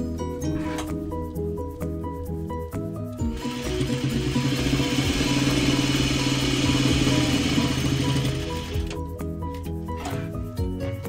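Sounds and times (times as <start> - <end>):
background music: 0.0 - 11.0
electric sewing machine running: 3.2 - 9.0.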